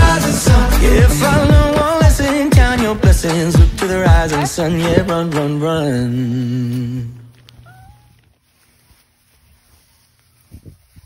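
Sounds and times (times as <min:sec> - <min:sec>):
puppy whining: 0:07.5 - 0:08.3.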